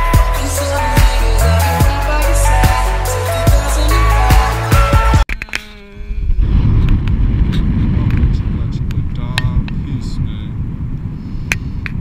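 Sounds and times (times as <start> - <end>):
background music: 0.0 - 5.3
wind buffeting microphone: 6.0 - 12.0.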